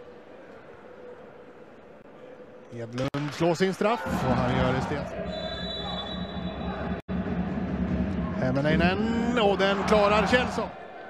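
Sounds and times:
ice arena ambience rumble: 4.1s - 10.9s.

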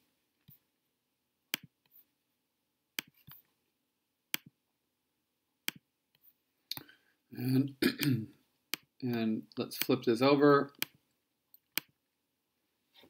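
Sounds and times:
computer mouse clicking: 5.7s - 6.3s.

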